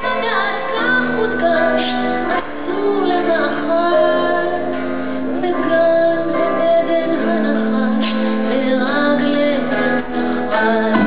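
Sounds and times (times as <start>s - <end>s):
woman singing: 0.0s - 11.0s
live band playing: 9.0s - 11.0s.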